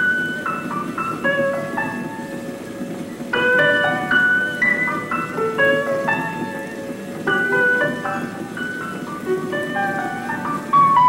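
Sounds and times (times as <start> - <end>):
solo piano music: 0.0 - 11.0.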